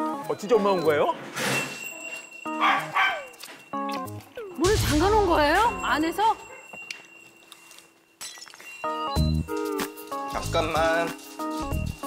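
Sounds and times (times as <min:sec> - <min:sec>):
dog barking: 0:02.6 - 0:03.3, 0:06.4 - 0:06.8.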